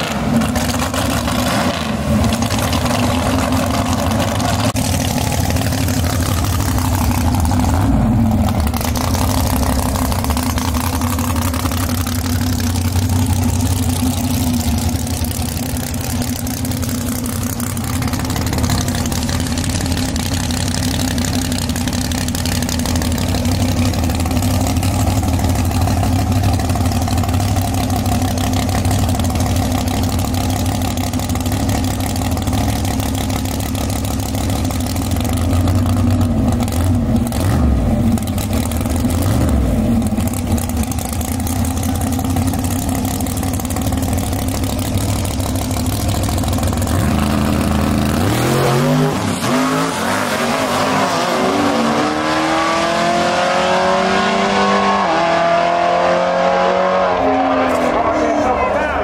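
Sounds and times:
race car engine idling: 2.0 - 49.1
race car accelerating: 46.6 - 59.0.

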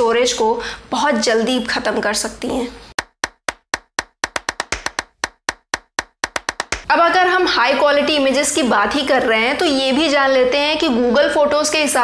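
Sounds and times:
sharp dry clicks: 3.0 - 6.9.

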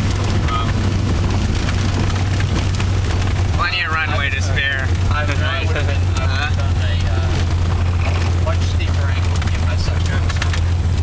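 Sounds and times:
propeller aircraft engine drone: 0.0 - 11.0
voices: 3.5 - 7.6.

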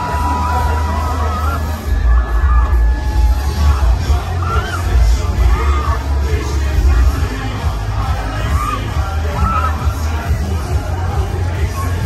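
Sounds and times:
crowd noise and shouts: 0.0 - 12.0
fairground music with pulsing bass: 0.0 - 12.0.

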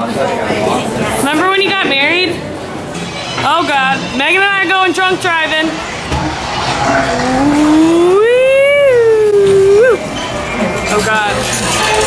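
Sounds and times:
woman's drawn-out vocal cry: 7.2 - 10.0.

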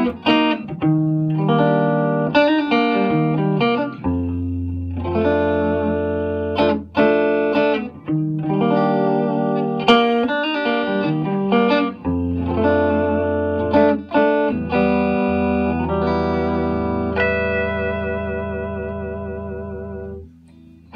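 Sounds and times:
electric guitar chords: 0.0 - 20.9.

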